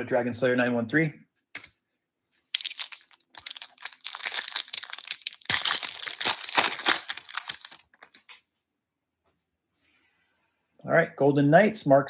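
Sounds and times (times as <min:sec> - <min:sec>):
foil wrapper crinkling and tearing: 0:02.5 - 0:08.4.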